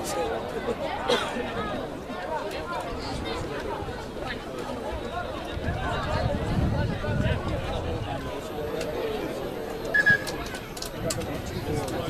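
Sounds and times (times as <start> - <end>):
chatter of voices: 0.0 - 12.0
referee whistle blast: 9.9 - 10.4.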